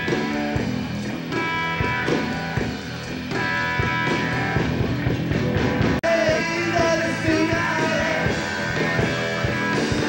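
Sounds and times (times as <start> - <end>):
drum kit beat: 0.0 - 10.0
electric bass: 0.0 - 10.0
rock band playing live: 0.0 - 10.0.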